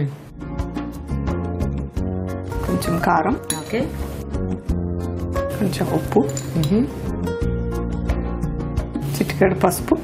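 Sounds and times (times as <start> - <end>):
background music: 0.0 - 10.0
metal spoon clinking in bowl: 3.4 - 3.9, 6.1 - 6.9.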